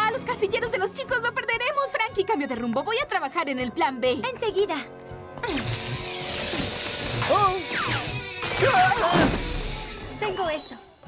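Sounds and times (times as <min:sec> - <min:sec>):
electric sparks crackling: 0:05.4 - 0:10.0.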